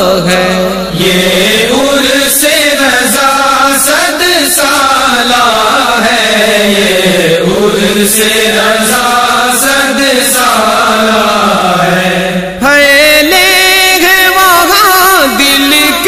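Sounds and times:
voices humming a vocal drone: 0.0s - 16.0s.

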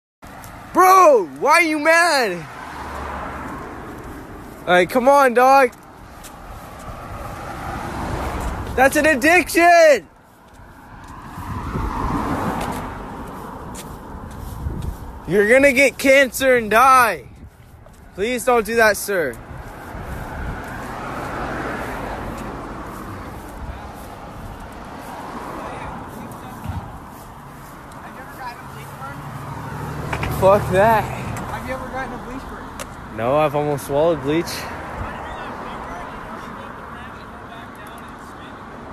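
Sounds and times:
car tyre and road noise: 0.2s - 38.9s.

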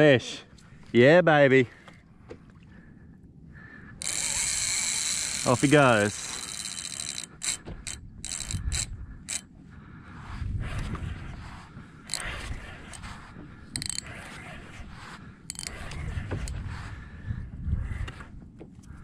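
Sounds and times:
fishing reel drag clicking: 4.0s - 9.5s, 12.1s - 16.7s.

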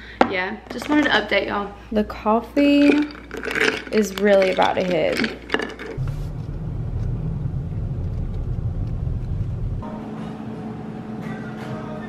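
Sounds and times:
car interior rumble: 6.0s - 9.8s.

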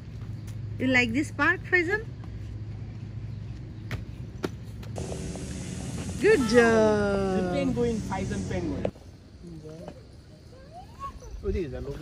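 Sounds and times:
low outdoor rumble: 0.0s - 9.0s
bright hiss: 5.0s - 8.9s.

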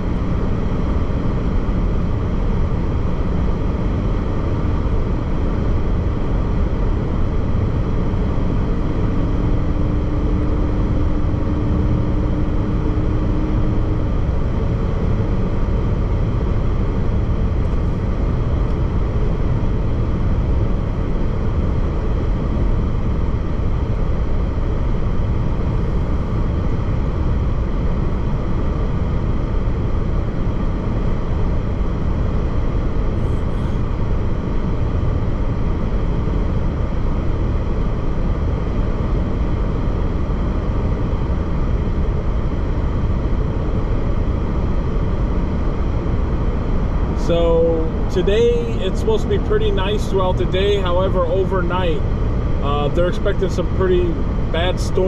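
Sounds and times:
car road noise from cabin: 0.0s - 55.0s
faint steady hum: 0.0s - 55.0s.

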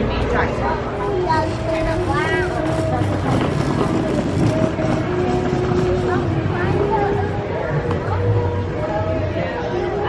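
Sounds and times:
people talking in background: 0.0s - 10.0s.

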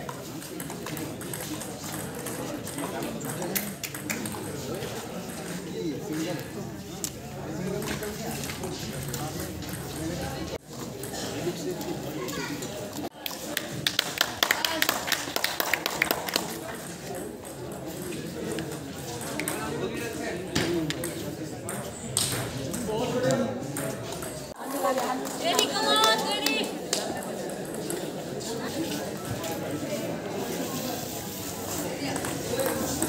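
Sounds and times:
voices chattering in a hall: 0.0s - 33.0s.

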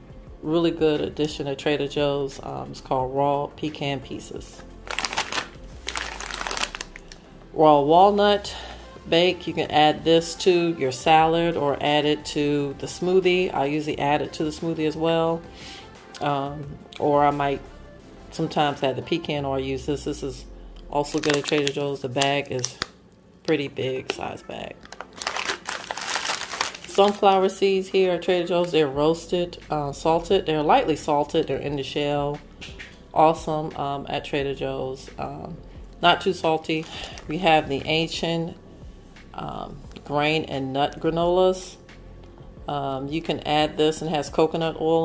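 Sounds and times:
plastic bags crinkling: 4.8s - 7.2s, 21.0s - 23.0s, 24.0s - 27.6s, 36.8s - 37.4s.

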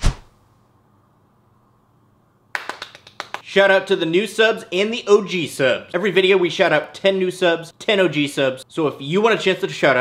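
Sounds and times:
person clapping hands quickly: 2.5s - 3.4s.

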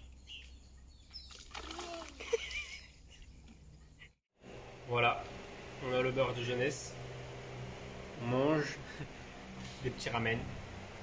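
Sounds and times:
foot splashing in shallow water: 1.3s - 2.6s.

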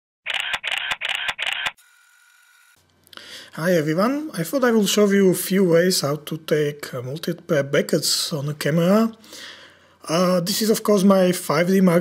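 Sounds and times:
camera shutter clicking: 0.3s - 2.4s
faint steady hum: 2.4s - 12.0s.

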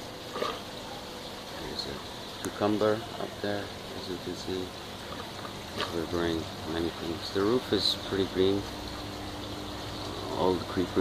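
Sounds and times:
running water hiss: 0.0s - 11.0s.

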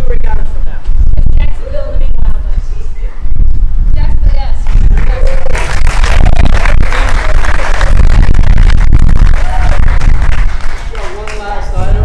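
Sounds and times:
steady low rumble: 0.0s - 12.0s
crowd applauding: 4.7s - 12.0s
crowd cheering: 5.1s - 12.0s.

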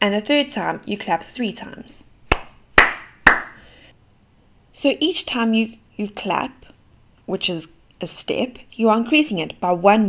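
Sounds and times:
hand claps: 2.3s - 3.6s.

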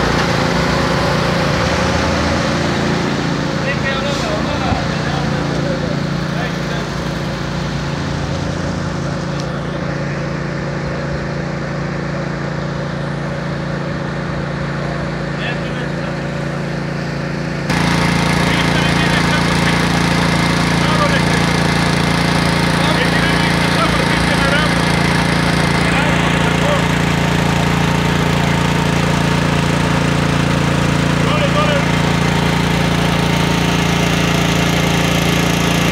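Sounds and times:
engine humming steadily: 0.0s - 35.9s.

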